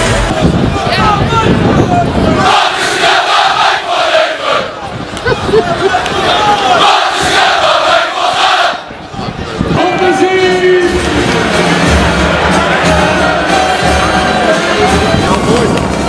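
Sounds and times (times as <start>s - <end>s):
crowd cheering and chanting: 0.0s - 16.0s.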